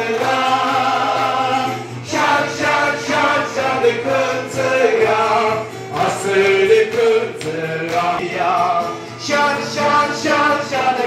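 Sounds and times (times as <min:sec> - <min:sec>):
men singing a church song: 0:00.0 - 0:11.0.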